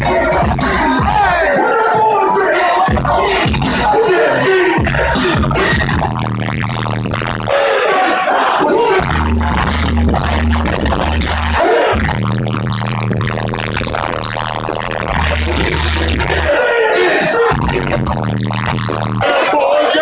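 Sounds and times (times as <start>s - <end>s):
hip-hop beat with deep bass: 0.0s - 20.0s
person rapping: 0.0s - 20.0s.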